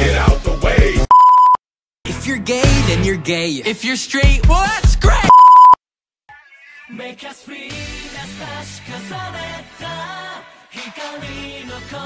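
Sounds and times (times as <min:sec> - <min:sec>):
music: 0:00.0 - 0:01.1, 0:02.1 - 0:05.3, 0:06.9 - 0:12.0
electronic bleep tone: 0:01.1 - 0:01.6, 0:05.3 - 0:05.8.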